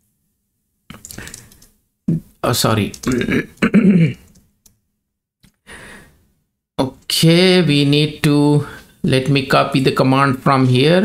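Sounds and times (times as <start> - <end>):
faint keyboard clicks: 0.9 - 1.8, 2.8 - 3.3, 4.2 - 4.8
breathy sigh: 5.7 - 6.2.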